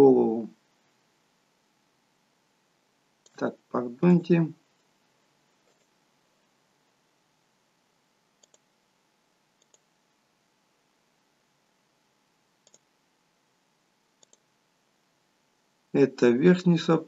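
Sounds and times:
faint computer mouse clicks: 8.4 - 8.7, 9.6 - 9.9, 12.6 - 12.9, 14.2 - 14.5.

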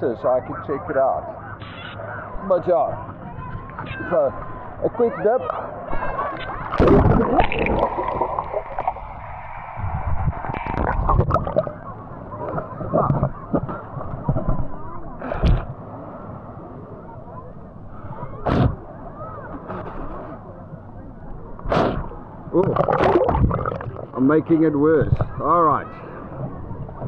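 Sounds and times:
water sloshing against camera: 5.4 - 15.8, 21.5 - 24.3
sharp water splashes: 6.6 - 9.1, 22.6 - 24.2.

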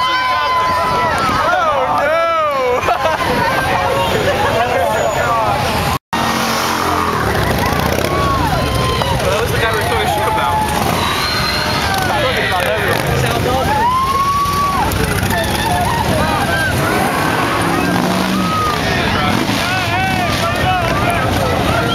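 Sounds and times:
long drawn-out shout: 0.0 - 4.8, 7.4 - 21.9
car engines rumbling: 0.0 - 21.9
crowd shouting and cheering: 0.0 - 21.9.

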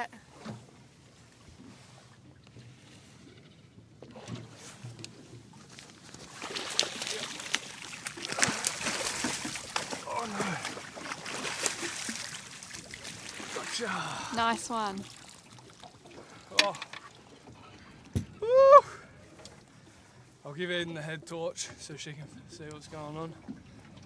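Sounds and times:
gear clattering on a boat: 0.0 - 13.2, 15.7 - 18.4.

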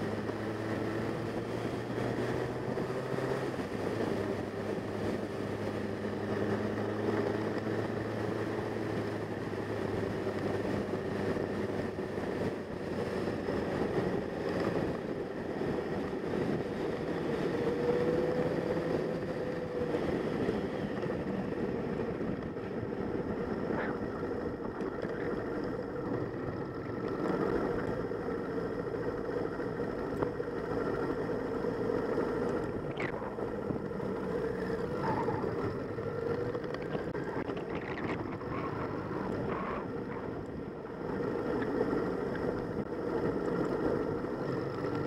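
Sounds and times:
motorcycle engine cruising: 0.0 - 45.0
wind rush on microphone: 0.0 - 45.0.

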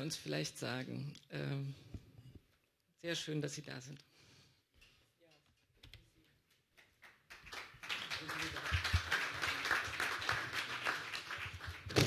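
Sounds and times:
audience applause: 7.3 - 12.0.

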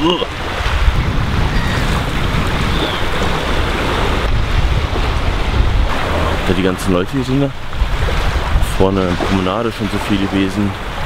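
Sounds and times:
small waves breaking on shore: 0.0 - 11.0
wind buffeting microphone: 0.0 - 11.0.

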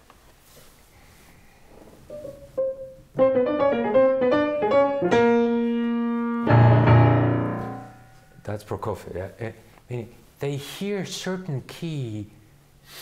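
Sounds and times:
grand piano playing: 2.1 - 8.4.

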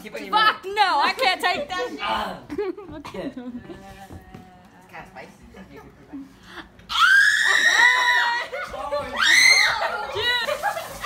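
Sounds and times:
woman screaming: 6.9 - 8.5, 9.1 - 10.0.

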